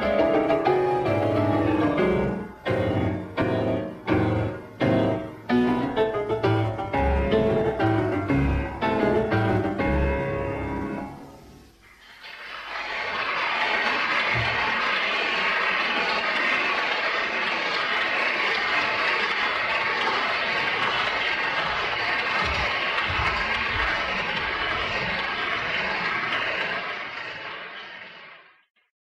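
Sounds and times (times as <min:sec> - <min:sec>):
audience applauding: 0:11.9 - 0:28.6.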